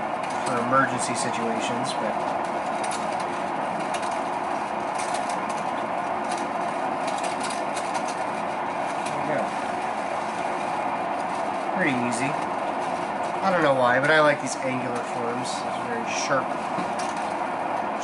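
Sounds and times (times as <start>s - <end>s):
potter's wheel motor hum: 0.0s - 18.0s.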